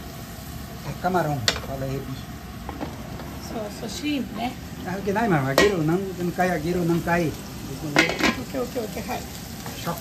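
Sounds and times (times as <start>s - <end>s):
shrimp sizzling in oil: 0.0s - 10.0s
spatula tapping pan: 5.5s - 6.0s.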